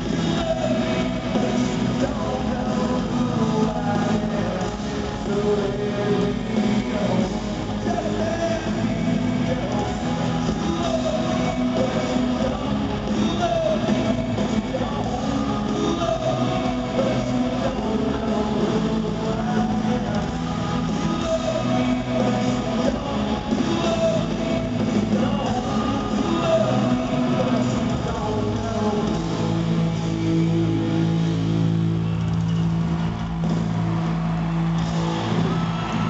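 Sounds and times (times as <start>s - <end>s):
crowd cheering: 0.0s - 29.8s, 30.8s - 36.0s
live rock band playing: 0.0s - 36.0s.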